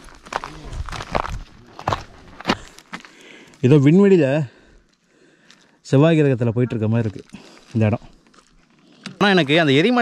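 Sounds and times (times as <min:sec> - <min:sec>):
footsteps on brittle crust: 0:00.0 - 0:03.8, 0:06.8 - 0:10.0.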